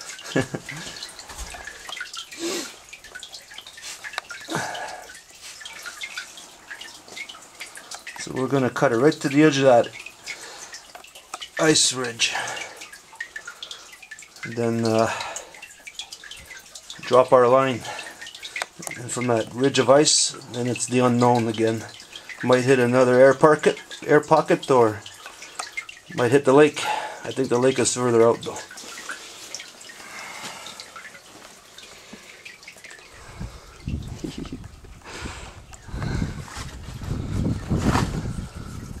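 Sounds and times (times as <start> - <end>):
water dripping into pool: 0.0 - 39.0.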